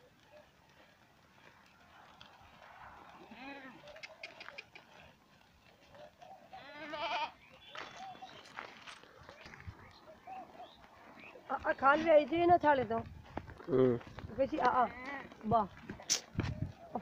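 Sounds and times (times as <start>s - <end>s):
goats bleating: 6.5s - 7.4s.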